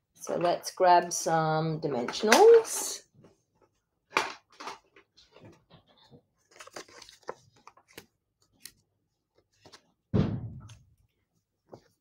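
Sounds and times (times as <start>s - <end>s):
paper rustling: 5.1s - 10.0s.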